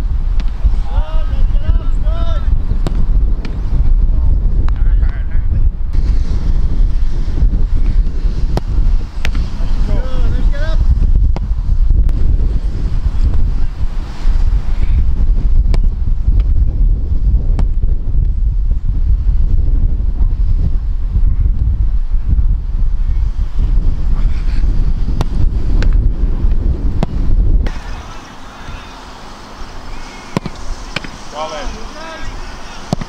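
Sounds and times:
wind buffeting microphone: 0:00.0 - 0:33.0
footballs thudding: 0:02.8 - 0:03.6, 0:08.4 - 0:09.5, 0:11.2 - 0:12.3, 0:25.1 - 0:27.4, 0:30.3 - 0:31.2.

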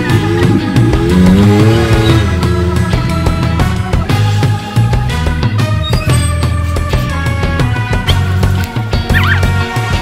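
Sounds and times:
music with drums and bass: 0:00.0 - 0:10.0.

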